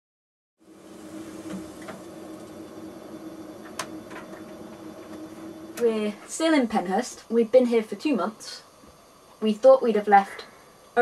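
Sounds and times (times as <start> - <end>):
low hum: 0.6 - 7.9
gas burner hissing: 0.6 - 11.0.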